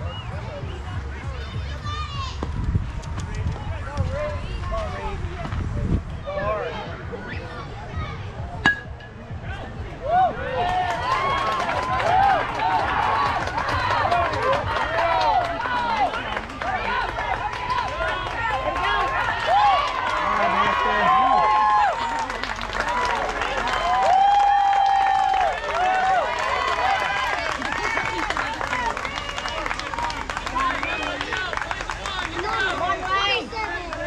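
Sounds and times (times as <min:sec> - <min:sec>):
crowd shouting and cheering: 0:00.0 - 0:34.0
metal bat hitting ball: 0:08.6 - 0:09.2.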